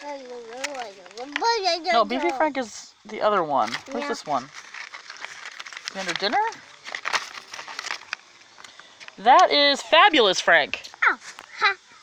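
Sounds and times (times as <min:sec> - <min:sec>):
paper rustling and crinkling: 0:03.6 - 0:09.1.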